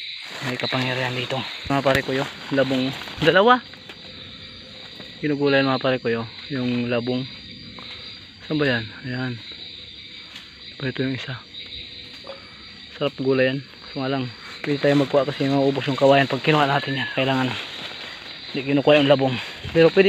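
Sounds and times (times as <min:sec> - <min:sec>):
crickets chirring: 0:00.0 - 0:20.0.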